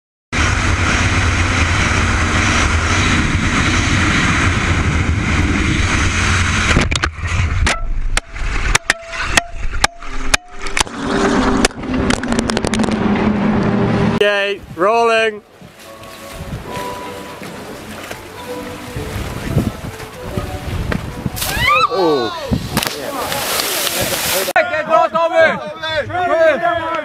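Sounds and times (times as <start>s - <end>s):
motorcycle engine at speed: 0.4s - 8.9s, 9.8s - 14.2s
wind rush: 0.4s - 24.6s
camera knocking and scraping on road: 6.6s - 13.8s.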